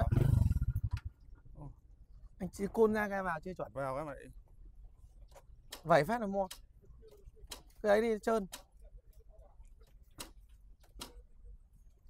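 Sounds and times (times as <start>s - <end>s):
motorcycle engine idling: 0.0s - 1.7s.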